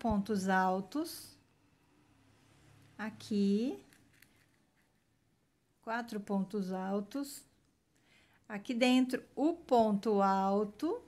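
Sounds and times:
woman's voice: 0.0 - 1.4, 3.0 - 3.9, 5.8 - 7.6, 8.5 - 11.0.

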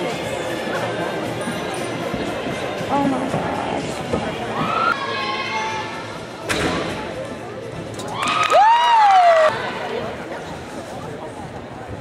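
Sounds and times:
voices in large gym: 0.0 - 12.0.

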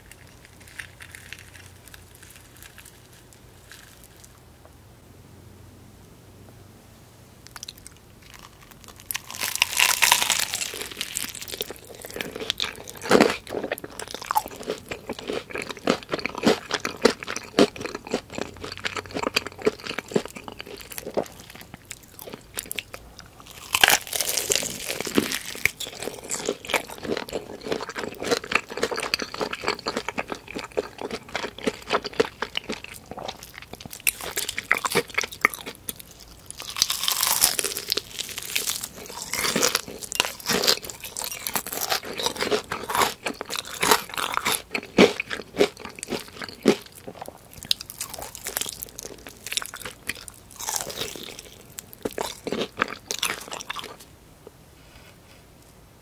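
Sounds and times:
crunchy fried chicken bites: 0.0 - 4.4, 7.4 - 54.0.

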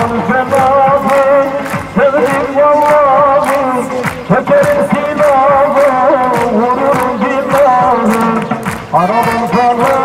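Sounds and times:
steady drum beat: 0.0 - 10.0.

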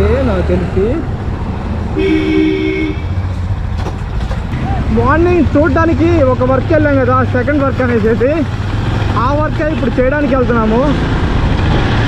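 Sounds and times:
motorcycle engine rumbling: 0.0 - 12.0
vehicle horn: 2.0 - 3.2.

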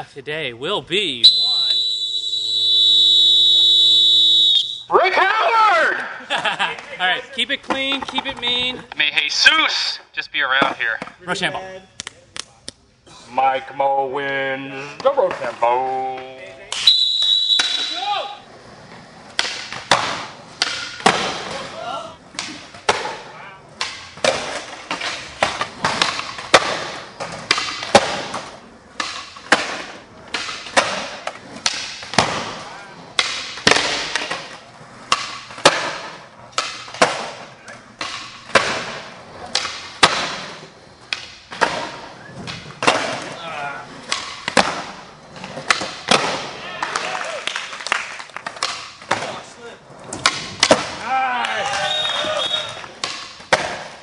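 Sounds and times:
shrill whistle blast: 1.2 - 4.9, 16.8 - 18.4, 51.8 - 52.8
skateboard pops and clacks: 19.3 - 21.6, 23.8 - 37.4, 38.0 - 43.3, 44.0 - 49.5, 50.1 - 54.0.

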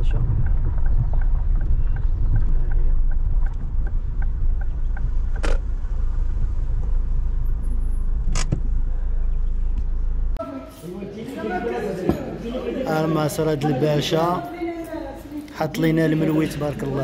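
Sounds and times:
car engine and road noise: 0.0 - 10.4.

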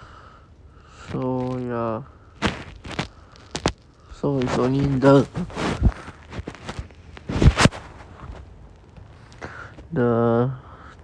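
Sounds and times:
low background hiss: 0.0 - 11.0.

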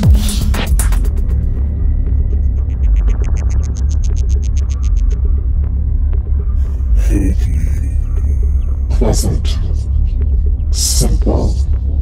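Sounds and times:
heavy bass pulse: 0.0 - 12.0.

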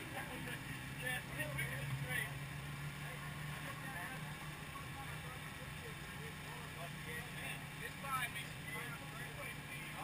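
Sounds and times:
indistinct talk: 0.0 - 10.0.

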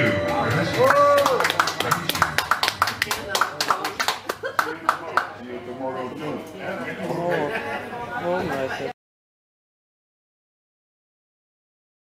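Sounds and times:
audience applauding: 0.8 - 5.4
people talking: 1.8 - 9.0.

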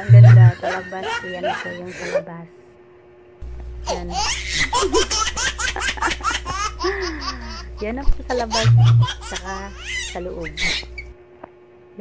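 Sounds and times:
high-pitched laughter: 0.0 - 1.9, 4.2 - 7.7, 8.5 - 9.6
steady low hum: 0.0 - 12.0.

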